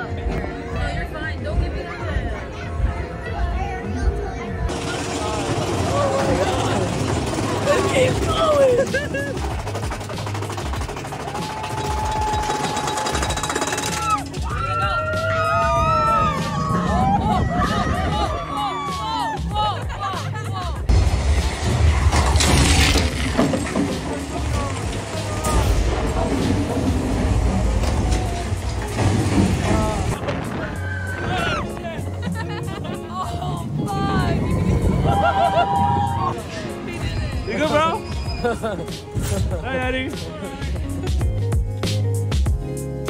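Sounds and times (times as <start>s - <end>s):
roller coaster train clattering: 4.7s - 19.7s, 20.9s - 40.6s
riders laughing and whooping: 4.8s - 9.8s, 11.0s - 20.9s, 29.7s - 36.6s, 37.4s - 39.9s
riders screaming: 11.2s - 19.5s, 30.6s - 31.8s, 33.9s - 36.4s.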